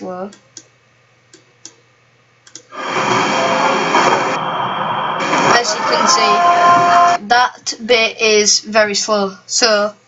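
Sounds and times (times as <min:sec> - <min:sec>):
indoor noise from video: 0:02.5 - 0:07.4.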